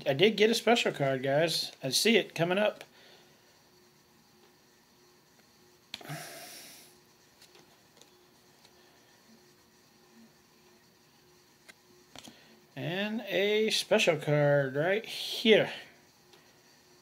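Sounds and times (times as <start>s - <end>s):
trading cards shuffling: 7.2s - 8.8s.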